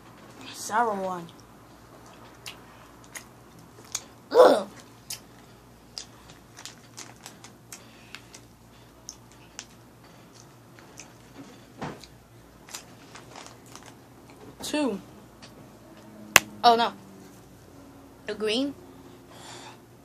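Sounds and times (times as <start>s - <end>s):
wet mouth clicks and crunches: 2.0s - 4.1s, 4.8s - 5.3s
person chewing candy: 2.0s - 4.2s, 4.8s - 14.0s.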